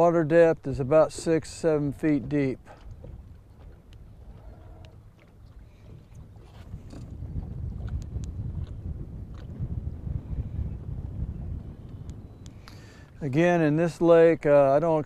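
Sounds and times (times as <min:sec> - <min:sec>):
water against a boat: 0:00.0 - 0:15.0
wind on microphone: 0:00.0 - 0:15.0.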